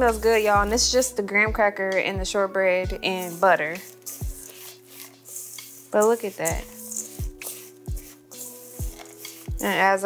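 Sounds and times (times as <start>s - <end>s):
background music: 0.0s - 10.0s
spoon scraping metal bowl: 2.8s - 10.0s.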